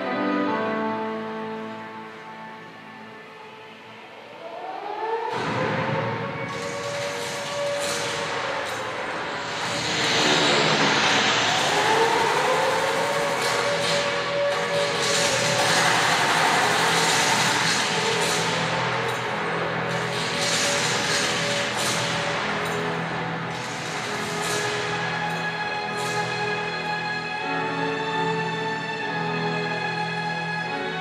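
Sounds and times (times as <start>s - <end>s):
loud rushing noise: 1.0s - 29.6s
siren wailing: 4.2s - 20.2s.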